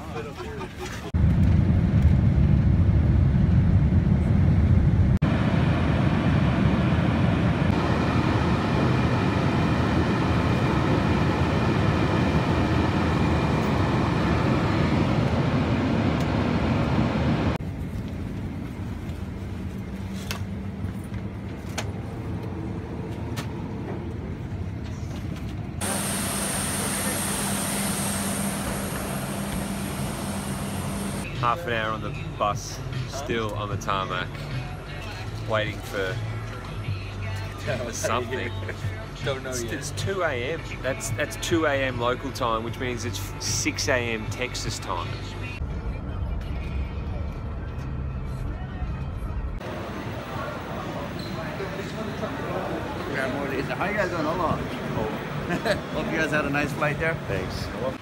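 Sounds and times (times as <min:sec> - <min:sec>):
jet cabin engine and airflow rush: 0:00.4 - 0:31.9, 0:49.4 - 0:58.0
steady hum: 0:01.2 - 0:20.2, 0:25.8 - 0:31.4
idling coach whine: 0:05.3 - 0:17.6, 0:25.8 - 0:31.4.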